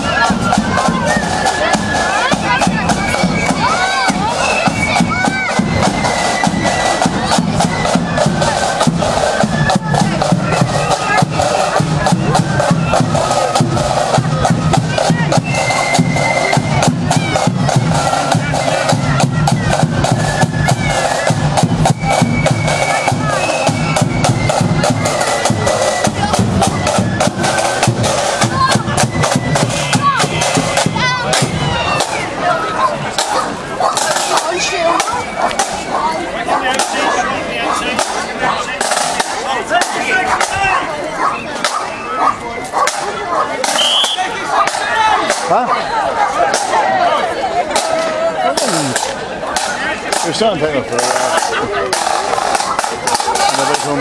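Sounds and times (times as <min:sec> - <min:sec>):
snare and bass drums: 0:00.0 - 0:36.0, 0:36.7 - 0:40.9, 0:41.6 - 0:47.0, 0:47.6 - 0:54.0
crowd chatter: 0:00.0 - 0:54.0
flutes playing march: 0:00.0 - 0:54.0.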